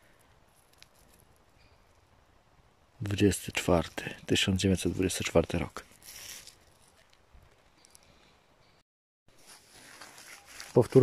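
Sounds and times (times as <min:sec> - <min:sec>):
faint rustle: 0:00.0 - 0:02.2, 0:05.8 - 0:08.5, 0:09.3 - 0:11.0.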